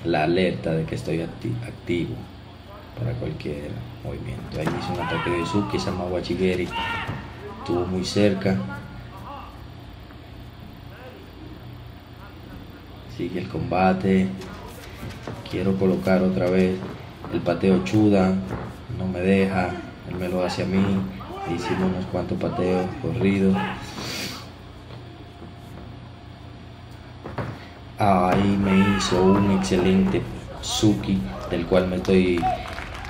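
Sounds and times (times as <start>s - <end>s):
low background hum: 0.0s - 33.0s
background hiss: 23.7s - 29.0s.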